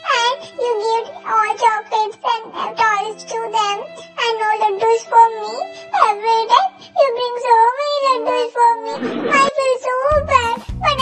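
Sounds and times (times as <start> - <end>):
light background music: 0.0 - 11.0
high-pitched cartoon voice speaking: 7.9 - 11.0.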